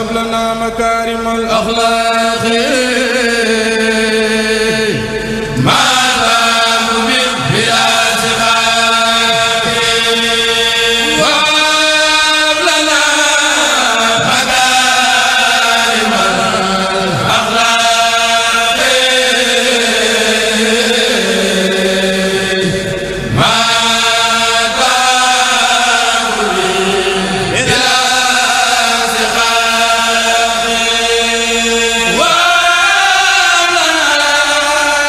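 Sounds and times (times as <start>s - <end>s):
men chanting in unison: 0.0s - 35.0s.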